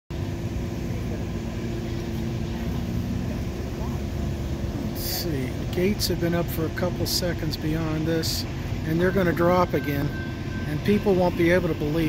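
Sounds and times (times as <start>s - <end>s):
low vehicle rumble: 0.1s - 12.0s
steady hum: 0.1s - 12.0s.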